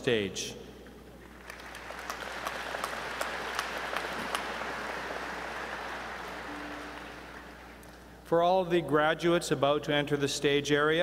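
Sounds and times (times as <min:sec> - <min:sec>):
audience applauding: 0:01.3 - 0:07.9.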